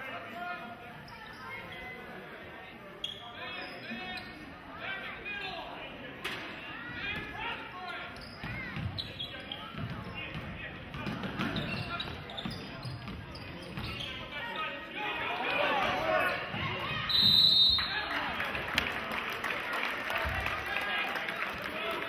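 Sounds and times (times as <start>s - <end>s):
voices in echoing hall: 0.0s - 22.0s
sneakers squeaking: 1.0s - 2.1s, 3.0s - 4.5s, 7.8s - 14.9s.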